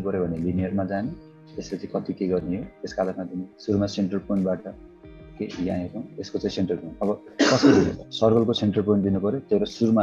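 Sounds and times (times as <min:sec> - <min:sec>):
man speaking: 0:00.0 - 0:04.8, 0:05.4 - 0:10.0
man coughing: 0:07.4 - 0:08.0.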